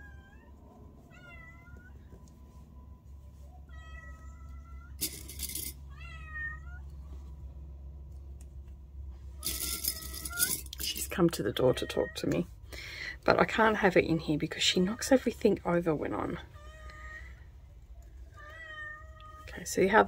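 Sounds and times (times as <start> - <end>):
cat meowing: 1.1 - 2.0, 3.6 - 5.0, 5.9 - 6.9, 18.3 - 19.4.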